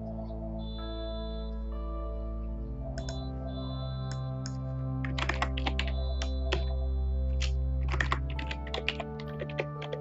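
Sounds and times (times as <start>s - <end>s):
music with sustained chords: 0.0s - 10.0s
keyboard keys clicking: 2.9s - 3.3s, 4.1s - 10.0s.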